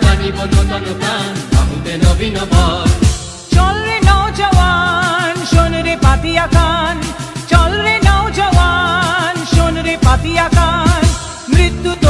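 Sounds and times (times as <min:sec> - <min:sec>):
high voice singing: 0:00.0 - 0:12.0
low drum beat: 0:01.5 - 0:12.0.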